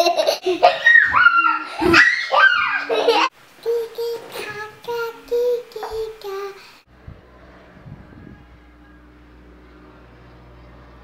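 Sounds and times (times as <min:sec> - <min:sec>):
girl singing held notes: 0:03.6 - 0:06.8.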